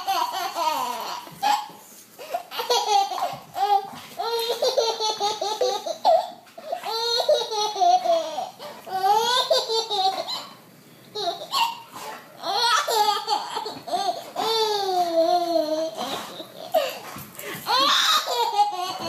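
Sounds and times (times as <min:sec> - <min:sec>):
baby laughing: 0:00.0 - 0:10.6, 0:11.2 - 0:19.0.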